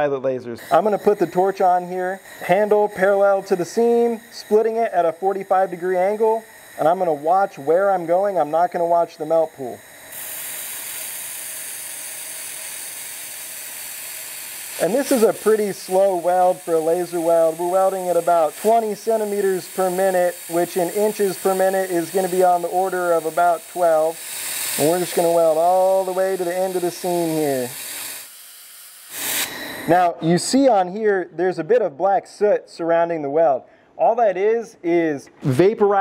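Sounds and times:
laser welder hissing: 0.6 - 30.3.

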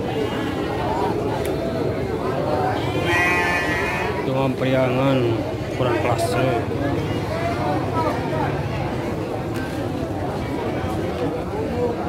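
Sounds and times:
market chatter: 0.0 - 12.0
sheep bleating: 2.8 - 4.3.

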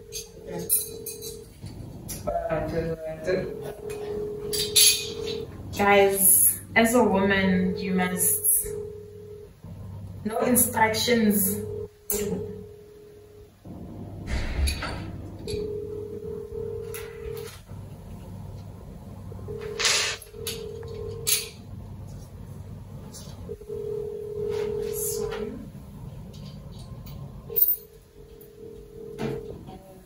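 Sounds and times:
steady electronic tone: 0.0 - 12.7, 19.4 - 21.3
low hum: 0.0 - 29.7.

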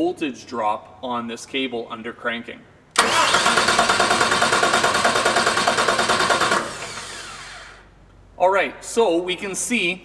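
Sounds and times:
starter motor cranking diesel engine: 3.0 - 7.8.

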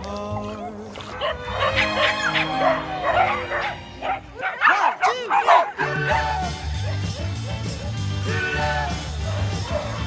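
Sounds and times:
background music: 0.0 - 10.0
small dogs barking and yipping: 0.3 - 8.0, 9.1 - 10.0.

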